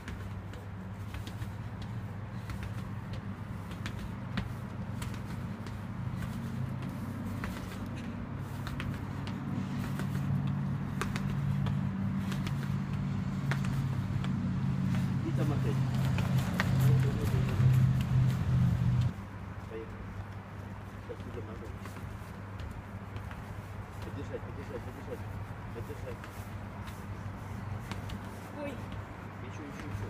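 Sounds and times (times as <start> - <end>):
footsteps running up stone stairs: 0.0 - 15.2.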